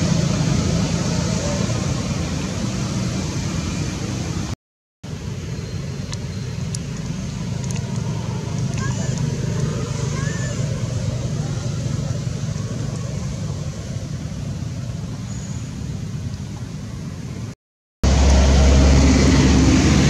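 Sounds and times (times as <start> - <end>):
low rumbling background noise: 0.0 - 20.0
faint rising chirps: 15.1 - 16.2.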